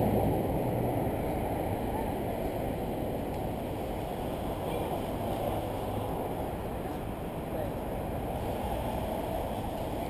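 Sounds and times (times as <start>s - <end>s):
wind rumbling on microphone: 0.0s - 10.0s.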